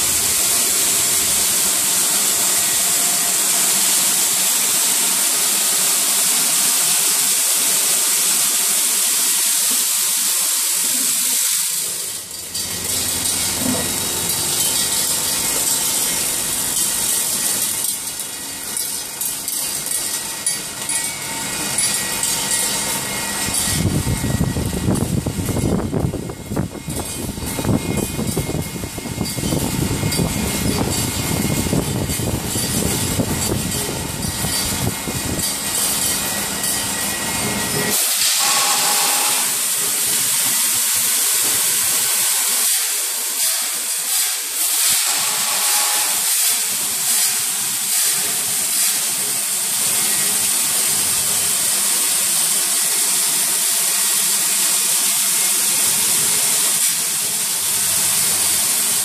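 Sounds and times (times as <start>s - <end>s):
packing machine hissing: 0.0s - 59.0s
screws clattering: 10.8s - 24.0s, 26.9s - 39.0s.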